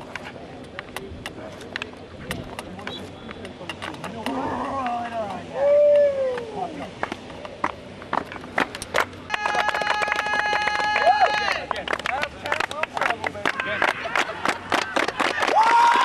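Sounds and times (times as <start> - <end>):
hands clapping and slapping: 7.0 - 16.0.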